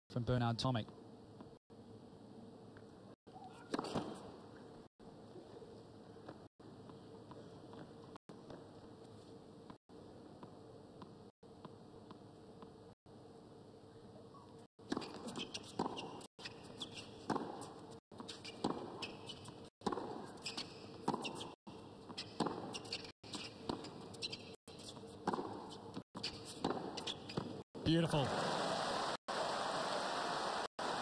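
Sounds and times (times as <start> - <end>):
tennis ball struck by rackets: 3.6 - 4.3
crowd applause: 28.2 - 31.0.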